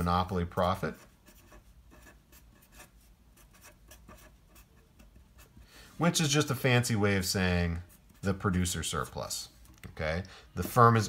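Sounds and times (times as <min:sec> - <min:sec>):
marker pen scratching on paper: 0:00.7 - 0:05.6.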